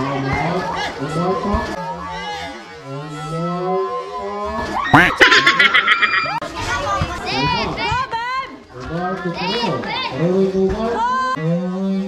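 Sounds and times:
people shouting and yelling: 0.0s - 8.6s.

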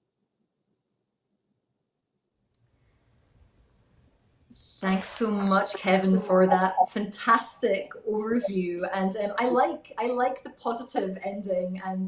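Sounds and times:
faint clicks: 2.5s - 6.0s.

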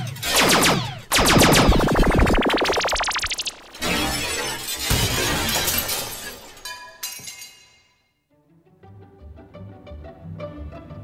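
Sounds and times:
glass shattering crash: 1.1s - 7.8s.

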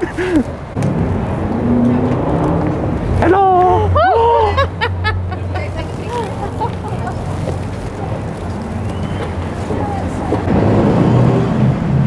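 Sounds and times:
faint voices of passers-by: 0.0s - 12.0s
street traffic rumble: 0.0s - 12.0s.

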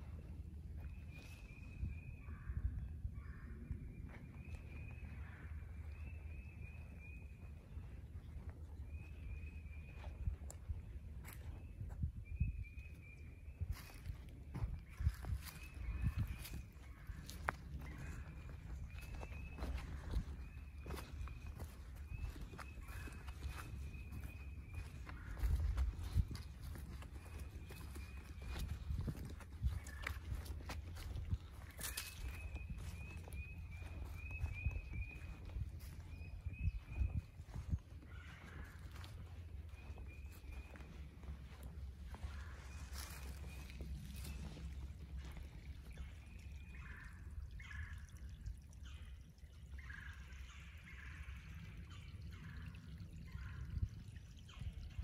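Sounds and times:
footsteps crunching dry leaves: 13.7s - 46.0s.

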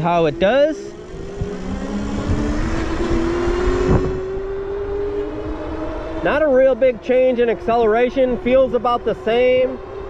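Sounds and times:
wind rushing: 0.0s - 6.6s
electric motor whining: 0.9s - 6.2s.

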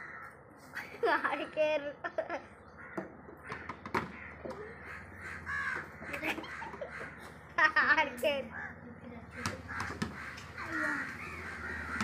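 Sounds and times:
harsh bird calls: 2.5s - 7.5s, 8.5s - 12.0s.

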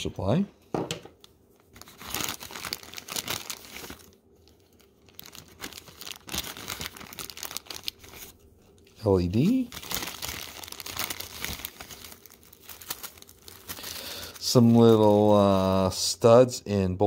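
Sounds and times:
plastic bag crinkling: 1.6s - 16.0s.

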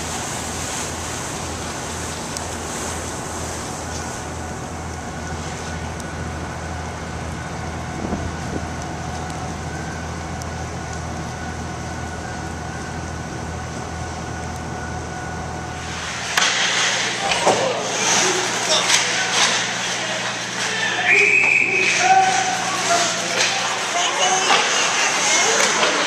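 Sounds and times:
wind and water noise: 0.0s - 16.3s
faint steady whine: 0.0s - 26.0s
ferry engines droning: 0.0s - 26.0s.

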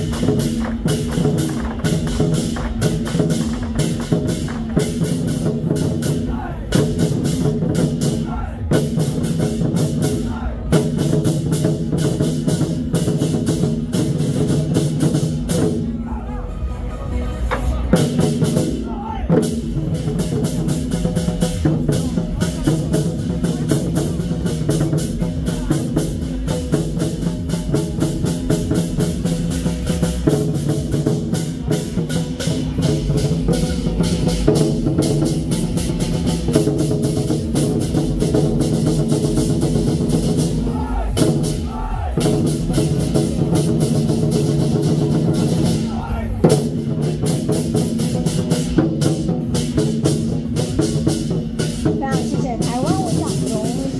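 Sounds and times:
barrel drums beating fast: 0.0s - 16.1s, 17.5s - 53.9s.

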